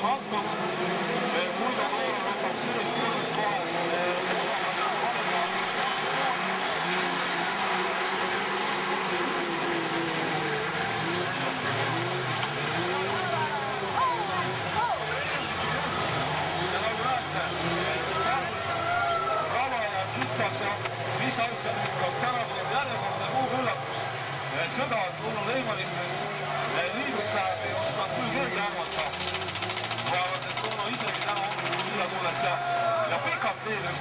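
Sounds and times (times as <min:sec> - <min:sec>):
many truck engines revving: 0:00.0 - 0:34.0.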